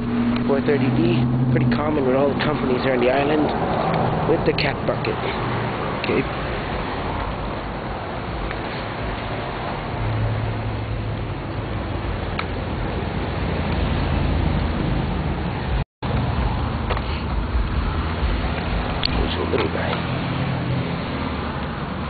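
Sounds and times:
low engine drone: 0:00.0 - 0:22.0
road traffic: 0:00.0 - 0:22.0.

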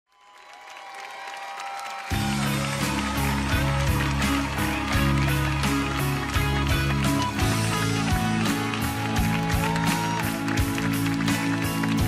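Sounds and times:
audience applauding: 0:00.1 - 0:12.0.

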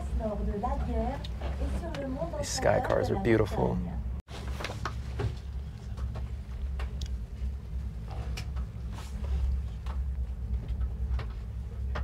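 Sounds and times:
gondola cabin rumble: 0:00.0 - 0:02.4.

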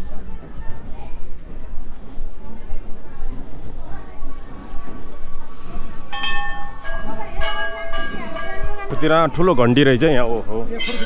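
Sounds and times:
metal temple bells ringing: 0:06.1 - 0:09.4.

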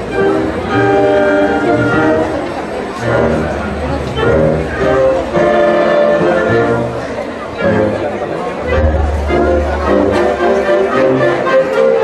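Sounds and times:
brass band playing held chords: 0:00.0 - 0:12.0
deep bass note: 0:08.7 - 0:10.0.

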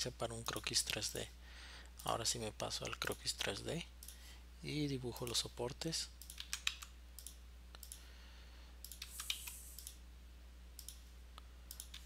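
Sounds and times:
steady low hum: 0:00.0 - 0:12.0
computer mouse clicks: 0:06.2 - 0:08.0, 0:08.8 - 0:10.0, 0:10.8 - 0:11.0, 0:11.7 - 0:12.0.

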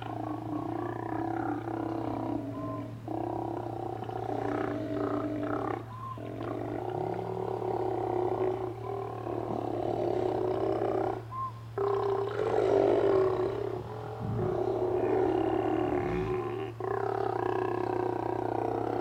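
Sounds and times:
sea lions roaring: 0:00.0 - 0:19.0.

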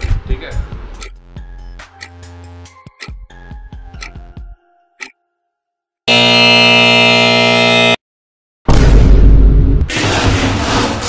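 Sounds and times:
electric buzzer: 0:06.1 - 0:08.0
loud noisy burst: 0:06.1 - 0:08.0.

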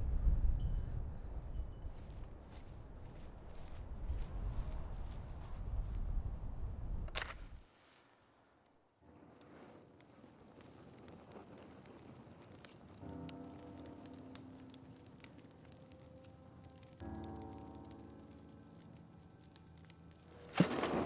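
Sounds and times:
wood fire crackling: 0:01.7 - 0:06.1, 0:07.1 - 0:21.0
soft sustained music: 0:12.4 - 0:21.0.

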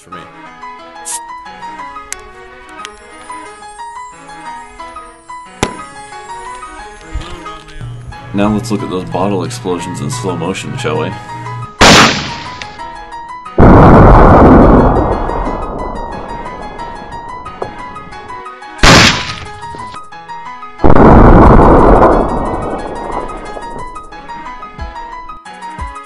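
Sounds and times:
background music with steady beat: 0:05.3 - 0:08.7, 0:24.3 - 0:26.0
slowed gunshot crack: 0:05.6 - 0:06.0, 0:11.8 - 0:12.9, 0:18.8 - 0:20.0, 0:20.8 - 0:24.5
deep rushing blast: 0:11.8 - 0:13.0, 0:13.6 - 0:19.8, 0:20.8 - 0:25.3.

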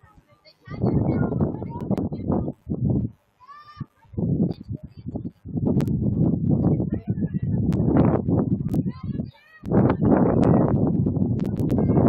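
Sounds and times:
wind buffeting microphone: 0:00.7 - 0:03.2, 0:04.1 - 0:12.0.

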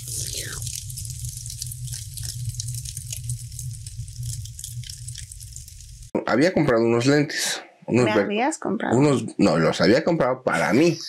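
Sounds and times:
crackling sizzling noise: 0:00.0 - 0:06.2.

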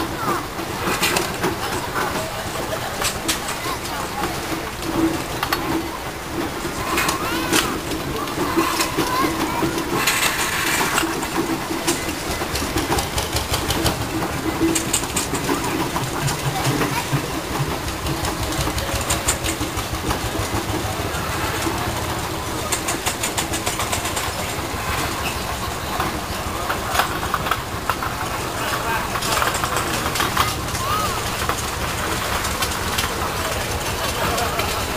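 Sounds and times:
engine works clicking: 0:00.0 - 0:34.9
people talking: 0:00.0 - 0:34.9
steam engine exhaust chuffing: 0:00.0 - 0:34.9.

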